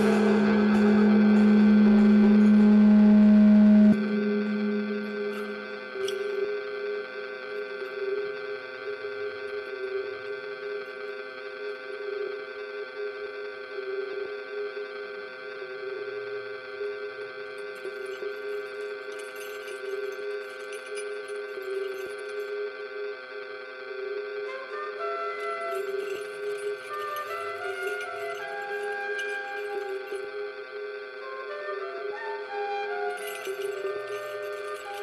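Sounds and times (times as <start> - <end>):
electronic drone chord: 0.0 - 7.0.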